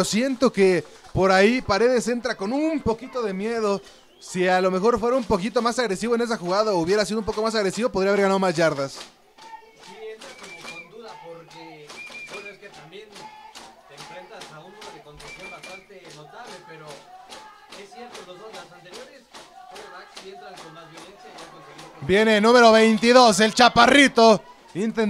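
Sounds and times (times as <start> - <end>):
faint voices calling out: 9.0 - 25.0.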